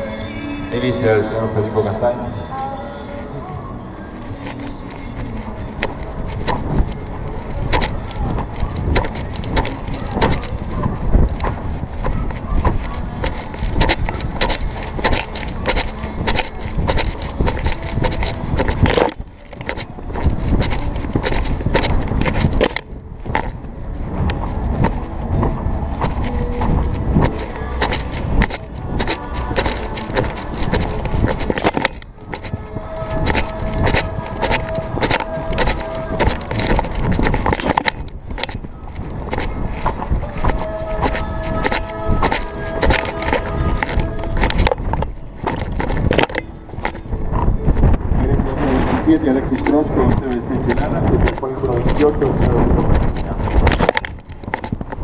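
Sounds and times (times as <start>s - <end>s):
hoofbeats on grass: 4.2s - 55.0s
horse tack rattling: 4.2s - 55.0s.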